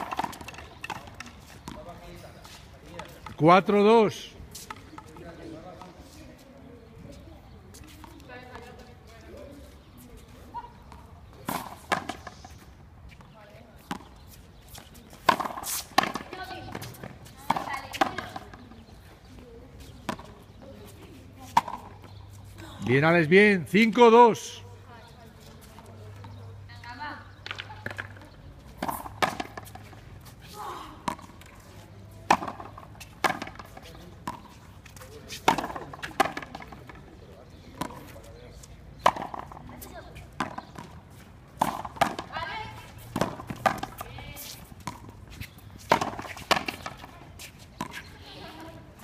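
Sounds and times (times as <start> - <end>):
racket striking ball: 0.0 - 1.4, 15.2 - 18.5, 28.8 - 29.8, 32.2 - 34.5, 35.4 - 37.0, 39.0 - 39.6, 40.4 - 41.0, 41.6 - 42.3, 43.0 - 45.1, 45.8 - 47.1, 47.8 - 48.0.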